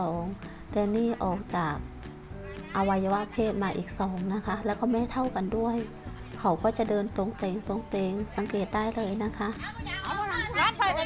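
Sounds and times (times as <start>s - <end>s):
woman speaking: 0.0s - 1.9s, 2.5s - 11.0s
background music: 0.0s - 11.0s.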